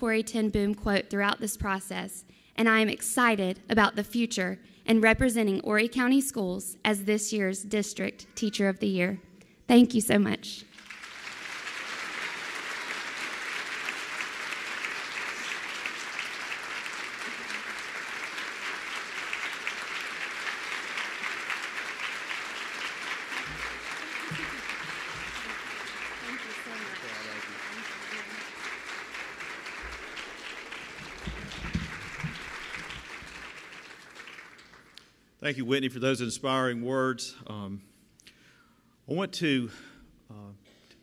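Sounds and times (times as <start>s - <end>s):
audience applauding: 10.7s - 35.2s.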